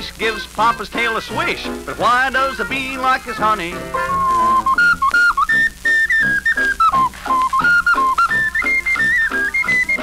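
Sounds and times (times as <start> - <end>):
band accompaniment: 0.0 - 10.0
whistle-like lead melody: 3.8 - 10.0.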